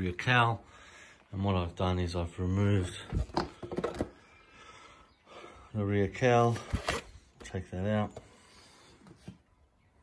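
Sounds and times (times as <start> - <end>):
plastic cover clicks and knocks: 3.1 - 4.1.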